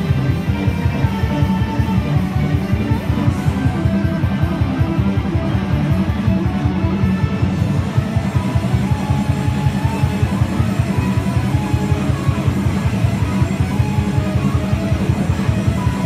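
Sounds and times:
amplified electric guitar: 0.0 - 16.0
heavy rock backing track: 0.0 - 16.0.

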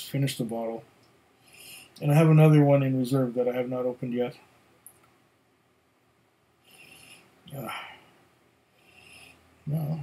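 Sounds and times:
faint breathy sniff: 1.4 - 2.0, 6.6 - 8.2, 8.8 - 9.6.

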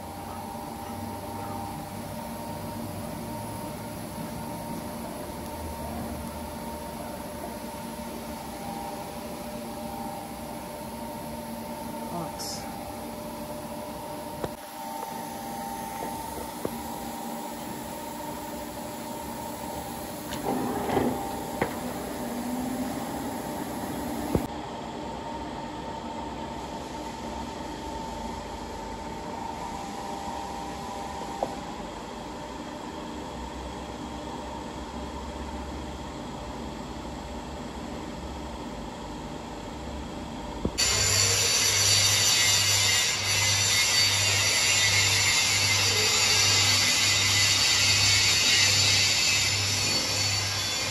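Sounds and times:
metal lathe humming: 0.0 - 24.5, 40.8 - 50.9
rhythmic hissing machine sound: 0.0 - 24.6, 40.6 - 50.9.

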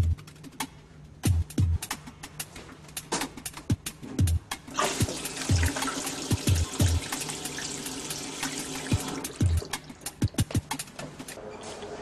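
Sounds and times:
background music with drumbeat: 0.0 - 11.4
urinal flushing: 4.7 - 10.0.

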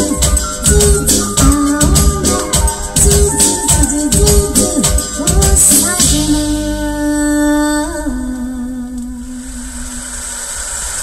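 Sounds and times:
record surface hiss and rumble: 0.0 - 11.0
song playing on a record: 0.0 - 11.0.

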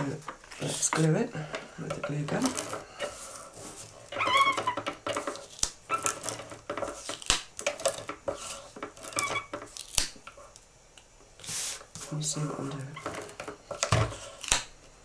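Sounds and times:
tape runner scraping on paper: 2.0 - 10.5
high wavering squeaks: 4.1 - 4.8.

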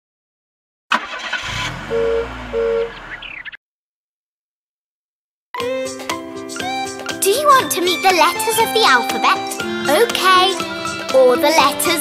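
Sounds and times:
car engine starting and running: 0.9 - 3.6
car horn beep: 1.8 - 3.0.

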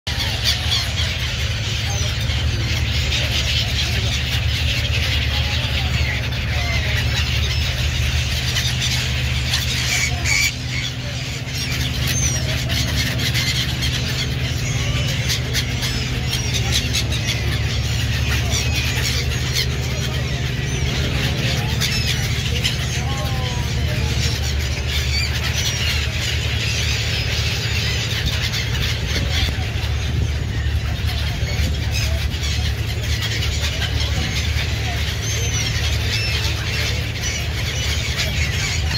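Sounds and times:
gulls calling: 0.1 - 38.9
steady low drone: 0.1 - 38.9.

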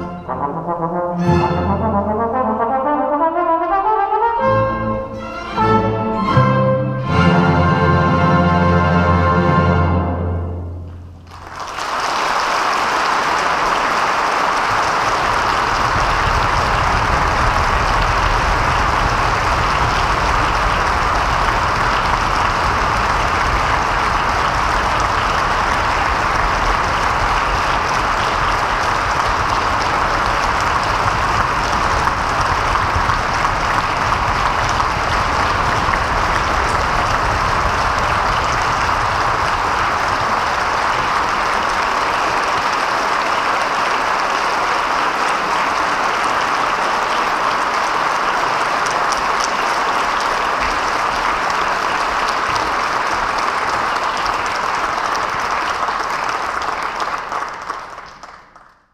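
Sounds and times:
audience applauding: 11.2 - 58.9.

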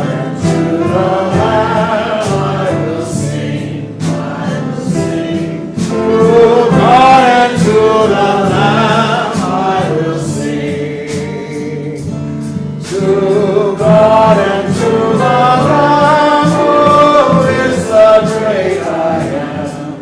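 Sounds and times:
choir singing a hymn: 0.0 - 20.0.

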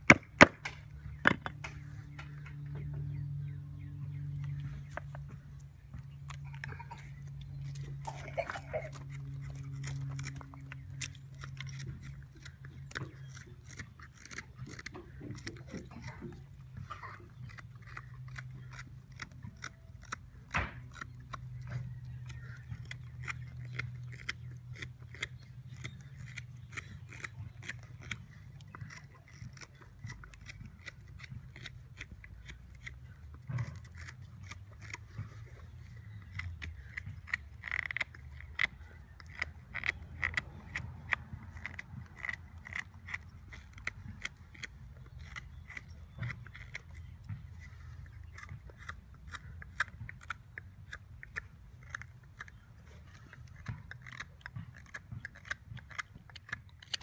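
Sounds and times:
steady low hum: 0.0 - 57.0
knife cutting wood shavings: 7.5 - 57.0.

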